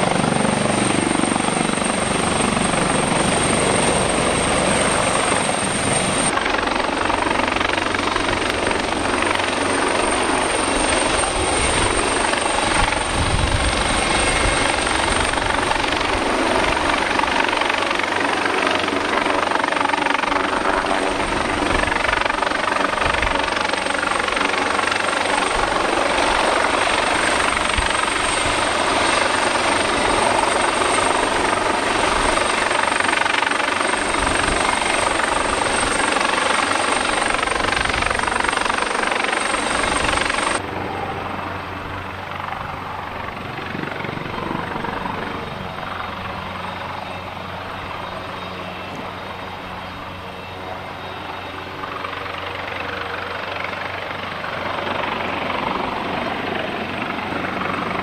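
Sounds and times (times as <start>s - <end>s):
helicopter rotor noise: 0.0s - 58.0s
high engine whine: 36.9s - 53.2s.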